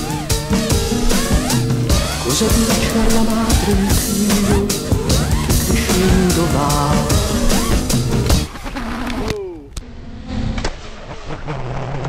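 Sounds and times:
background music: 0.0 - 8.9.

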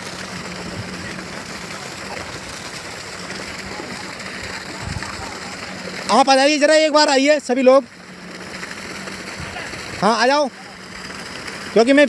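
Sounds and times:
water pump motor humming: 0.0 - 12.0
water rushing hiss: 0.0 - 12.0.

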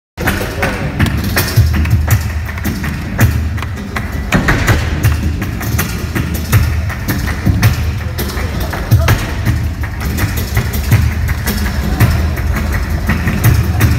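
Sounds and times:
rhythmic hand-clapping: 0.2 - 13.9.

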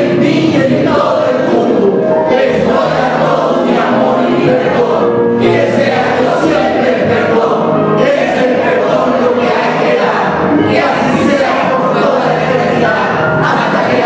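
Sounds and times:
group chanting in unison: 0.0 - 14.0.

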